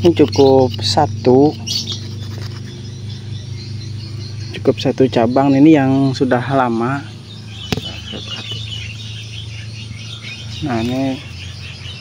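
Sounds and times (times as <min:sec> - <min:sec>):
small birds chirping: 0:00.0 - 0:12.0
steady low hum: 0:00.0 - 0:12.0.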